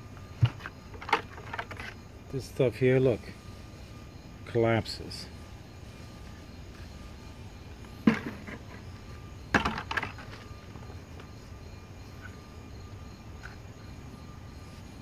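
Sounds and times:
thin high hum: 0.0s - 15.0s
plastic buckets knocking: 9.6s - 10.4s.

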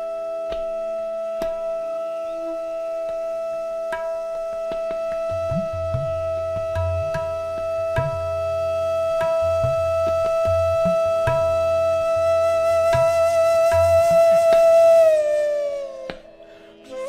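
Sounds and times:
bamboo flute long note: 0.0s - 17.0s
deep tabla strokes: 0.0s - 17.0s.

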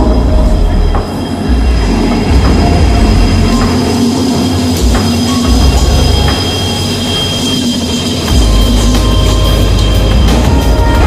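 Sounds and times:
locomotive engine rumbling: 0.0s - 11.0s
train wheels on rails: 0.0s - 11.0s.

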